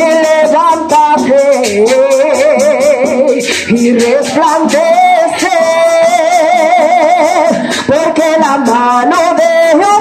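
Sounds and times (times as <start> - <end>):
band percussion: 0.0 - 10.0
woman singing into a microphone: 0.0 - 10.0.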